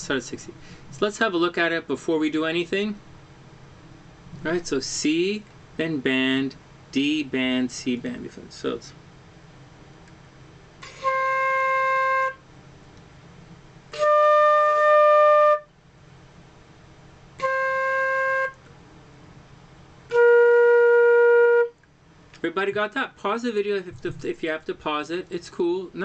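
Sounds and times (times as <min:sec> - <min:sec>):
flute long held notes: 0:10.8 - 0:12.4, 0:13.9 - 0:15.7, 0:17.4 - 0:18.6, 0:20.1 - 0:21.8.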